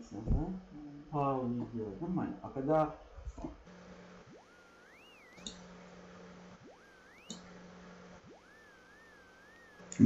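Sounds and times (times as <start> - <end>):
low steady hum: 0.0 - 10.0
rising electronic tone: 3.7 - 10.0.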